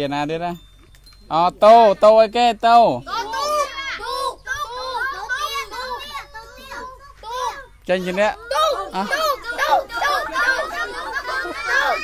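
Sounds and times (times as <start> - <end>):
young children talking: 1.3 - 12.0.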